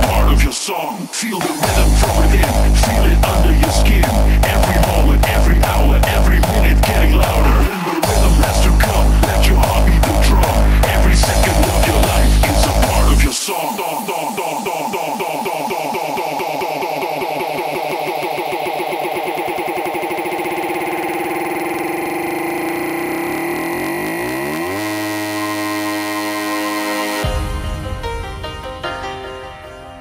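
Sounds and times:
hardstyle electronic music: 0.0 - 29.4.

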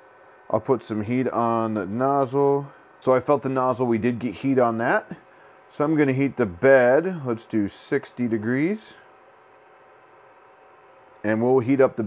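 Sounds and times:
printer fans hissing and humming: 0.0 - 12.0.

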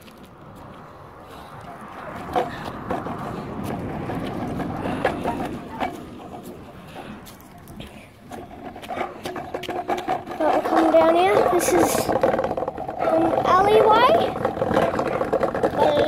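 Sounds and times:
scooter wheels on gravel: 0.0 - 16.0.

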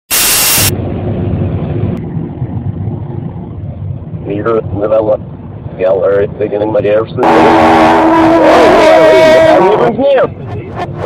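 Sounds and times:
static hiss burst: 0.1 - 0.7
low rumble: 0.1 - 11.0.

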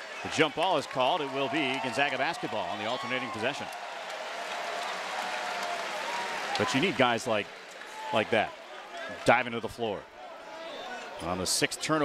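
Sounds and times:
arena crowd applauding: 0.0 - 9.6.

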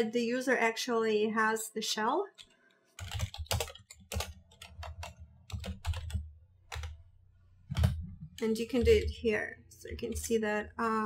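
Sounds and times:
computer keyboard typing: 2.4 - 7.1, 7.7 - 10.4.

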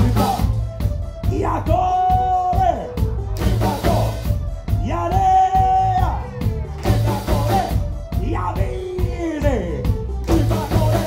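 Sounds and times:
bass: 0.0 - 11.0
man singing: 0.0 - 11.0
steady drum beat: 0.0 - 11.0.

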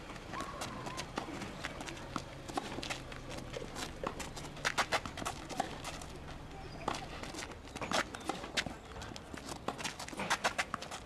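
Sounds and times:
footsteps on court: 0.0 - 11.0
tennis ball hit and bouncing: 0.3 - 6.1.

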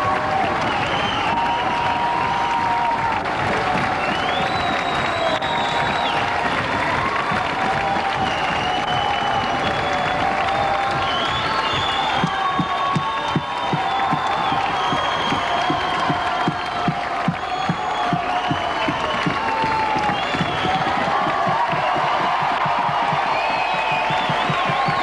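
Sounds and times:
audience applauding and cheering: 0.0 - 25.0.

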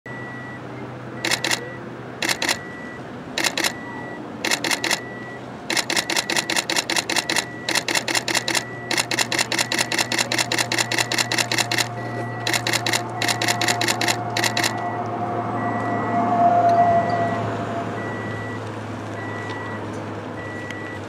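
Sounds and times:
camera shutter clicks: 1.2 - 1.6, 2.2 - 2.6, 3.4 - 3.8, 4.4 - 5.1, 5.7 - 14.8.

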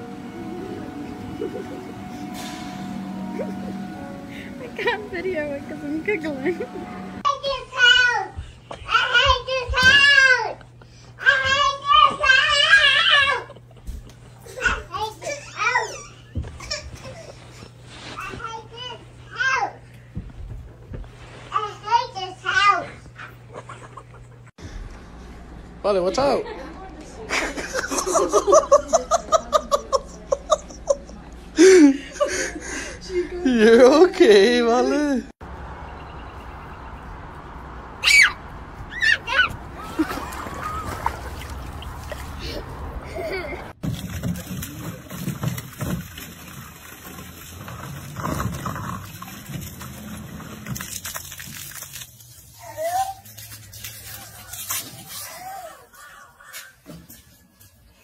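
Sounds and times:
high-pitched squeal: 0.0 - 7.2
low background hum: 0.0 - 58.0
toddler singing: 7.3 - 10.6
brief high cry: 38.0 - 39.5.

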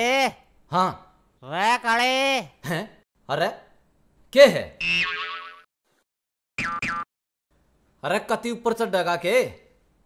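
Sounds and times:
comic boing sound effect: 4.8 - 5.6, 6.6 - 7.1.

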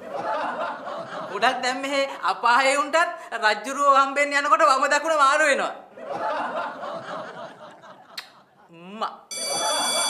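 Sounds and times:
bright electronic ring: 9.3 - 10.0.

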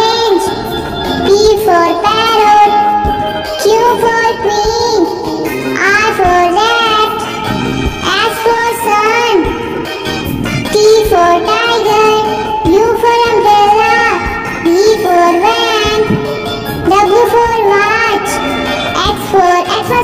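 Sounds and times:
childlike voice singing: 0.0 - 0.6, 1.2 - 9.6, 10.6 - 20.0
bright backing track with beat: 0.0 - 20.0.

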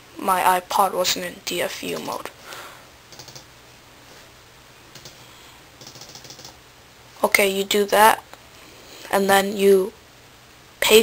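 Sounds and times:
computer keyboard clicking: 1.9 - 2.3, 3.1 - 3.5, 4.9 - 5.2, 5.8 - 6.6.

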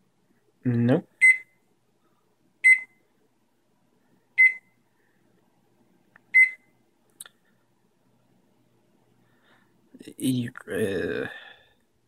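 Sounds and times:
microwave short high beeps: 2.7 - 3.0, 4.4 - 4.7, 6.4 - 6.6.

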